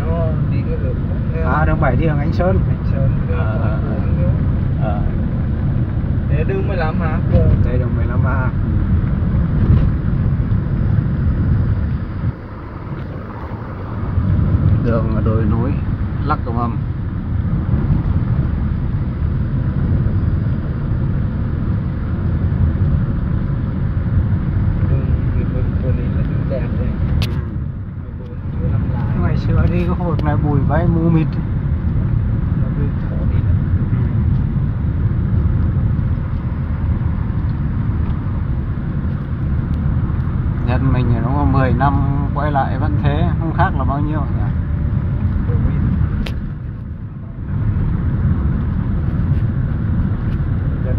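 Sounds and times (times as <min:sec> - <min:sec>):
car road and engine rumble: 0:00.0 - 0:50.9.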